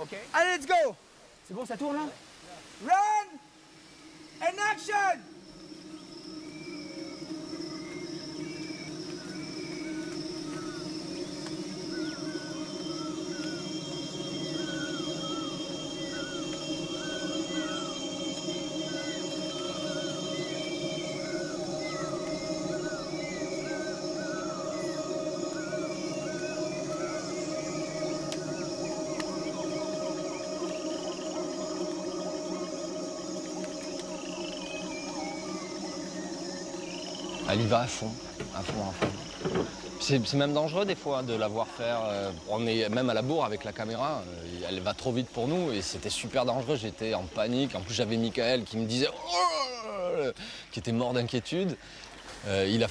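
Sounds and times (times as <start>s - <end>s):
high insect drone: 0.0s - 52.9s
low sustained hum: 5.2s - 41.0s
animals chirping: 6.0s - 42.1s.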